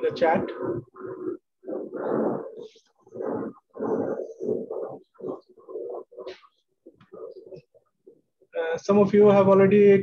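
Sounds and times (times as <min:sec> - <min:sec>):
faint broken voice over video call: 0:00.0 - 0:10.0.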